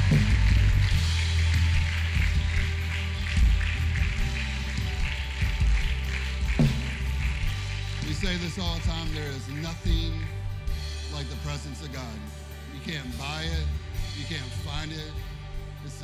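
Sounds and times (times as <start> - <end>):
slow worship music: 0.0 - 16.0.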